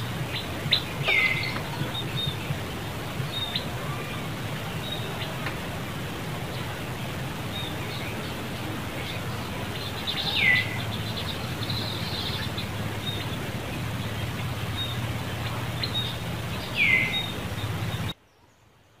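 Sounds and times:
steady low hum: 0.0 - 18.2
birds chirping: 0.0 - 18.6.

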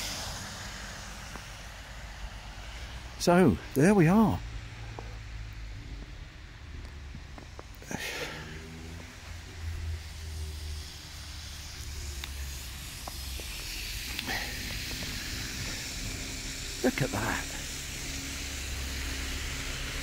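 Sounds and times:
car tyres hissing on wet road: 0.0 - 20.0
low traffic rumble: 0.0 - 20.0.

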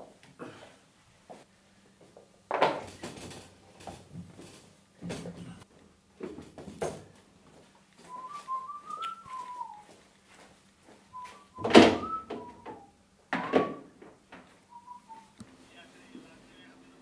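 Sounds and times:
person whistling a tune: 8.1 - 10.0, 11.1 - 13.9, 14.7 - 15.4.

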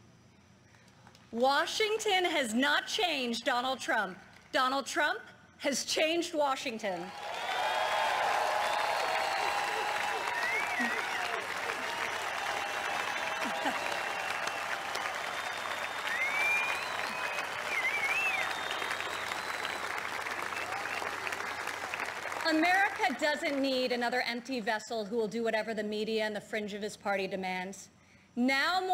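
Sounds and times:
whistles from crowd: 7.1 - 22.2
crowd applauding and cheering: 7.1 - 23.8.

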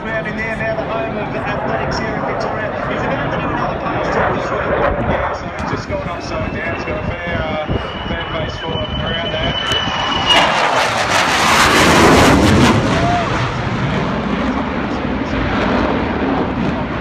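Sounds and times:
jet fighter flying overhead: 0.0 - 17.0.

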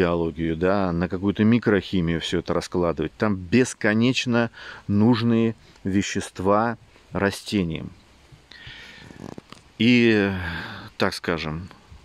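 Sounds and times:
man speaking: 0.0 - 8.0, 9.8 - 11.8
faint low vocal hum: 4.3 - 12.0
man breathing in: 4.5 - 4.9, 8.5 - 9.2.

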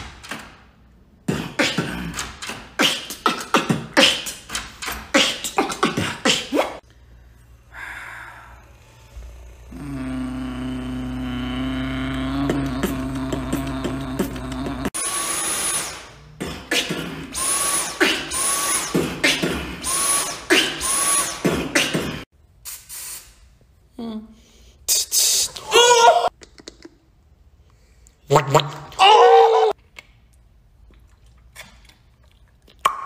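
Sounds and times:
beatboxing: 1.2 - 6.8, 9.7 - 15.0, 16.4 - 22.2
massage gun motor hum: 7.2 - 15.0
short mouth sounds: 9.7 - 14.9.

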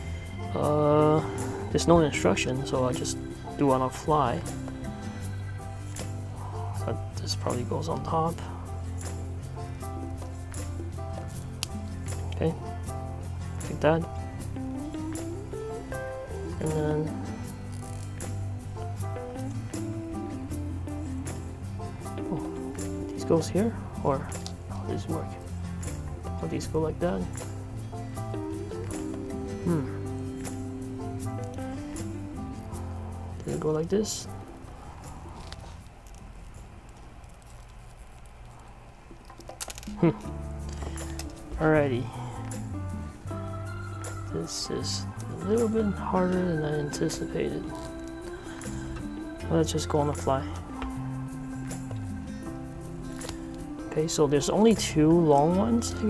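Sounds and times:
background music with held notes: 0.0 - 35.9, 39.8 - 56.0
plastic parts clicking: 39.2 - 40.1.

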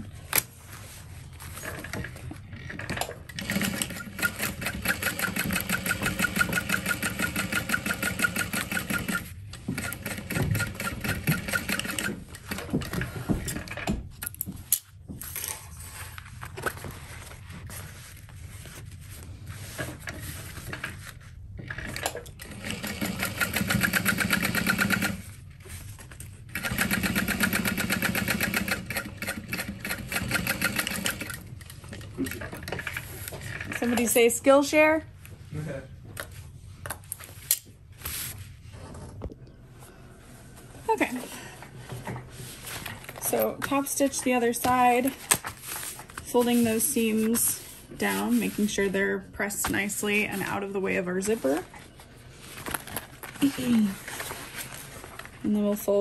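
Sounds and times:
sewing machine stitching: 3.3 - 12.6, 21.7 - 25.2, 26.5 - 31.4.

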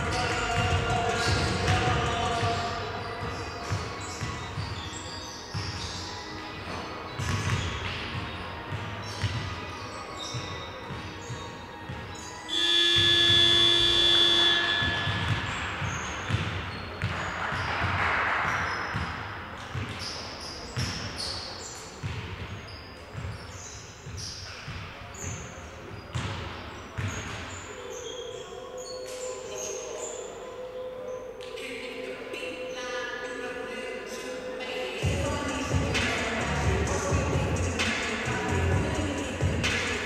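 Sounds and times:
basketballs bouncing on hardwood: 0.0 - 4.8, 5.5 - 5.9, 6.7 - 9.6, 10.3 - 20.2, 26.1 - 27.2
voices echoing in sports hall: 0.0 - 40.0
loud buzzer tone: 12.5 - 15.4.

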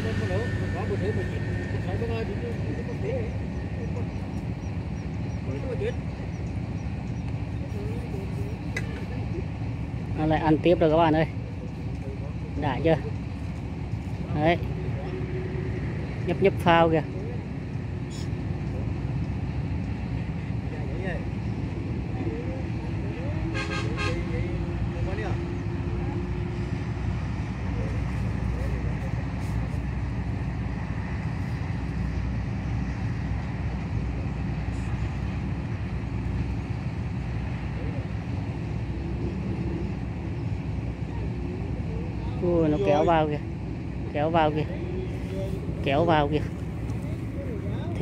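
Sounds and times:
distant traffic rumble: 0.0 - 48.0
long horn note: 23.5 - 24.4.

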